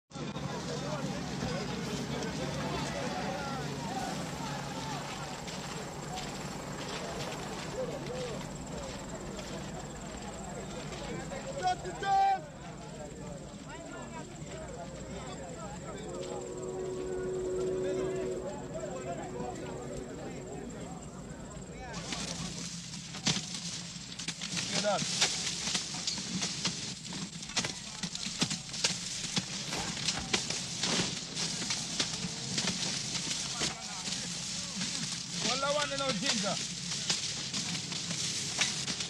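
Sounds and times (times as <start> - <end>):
men's voices chattering: 0.1 - 22.9
steady pitched tone: 14.4 - 22.0
loud call: 14.9 - 21.9.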